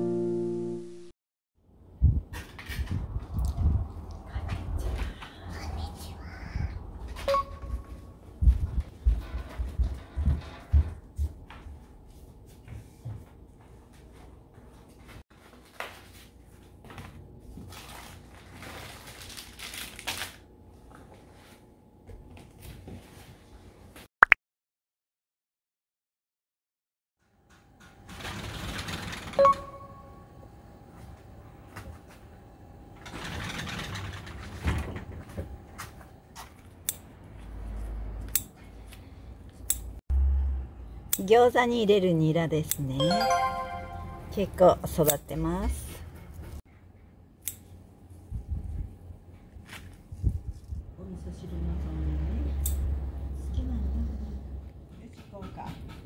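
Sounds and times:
footsteps on wooden floor: 0:08.4 - 0:14.9
sliding glass door rolling: 0:28.1 - 0:29.4, 0:33.0 - 0:35.3
short high tone: 0:43.0 - 0:44.5.

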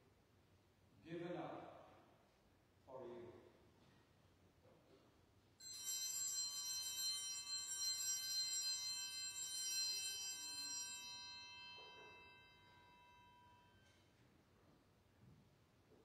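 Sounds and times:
small metal bells ringing: 0:05.6 - 0:14.1.

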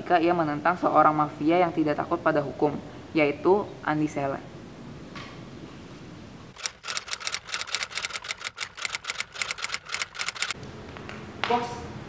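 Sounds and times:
fast sharp clicks: 0:06.6 - 0:10.6.

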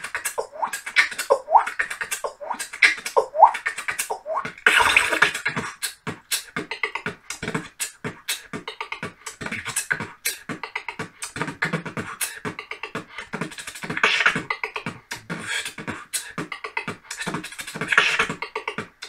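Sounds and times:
person beatboxing: 0:00.0 - 0:19.0
rising vocal swoops: 0:00.3 - 0:05.2.

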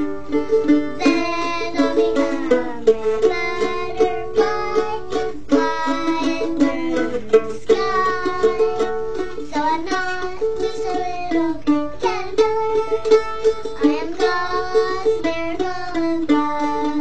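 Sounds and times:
plucked string instrument melody: 0:00.0 - 0:17.0.

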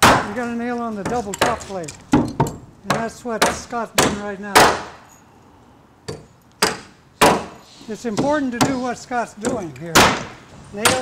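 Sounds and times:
hammer striking nail into wood: 0:01.0 - 0:05.0, 0:06.1 - 0:07.6, 0:09.4 - 0:11.0.

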